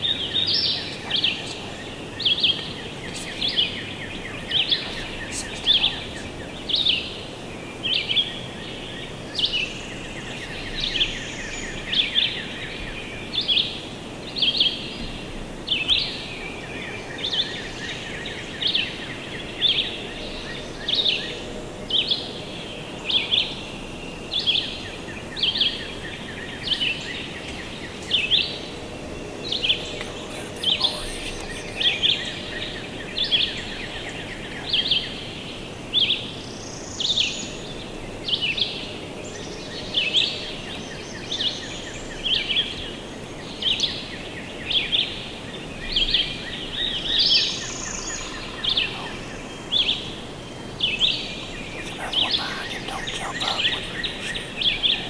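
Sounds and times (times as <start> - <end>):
songbird chirping: 0.0 - 13.7, 24.4 - 35.6, 45.5 - 55.0
woodland background noise: 0.0 - 55.0.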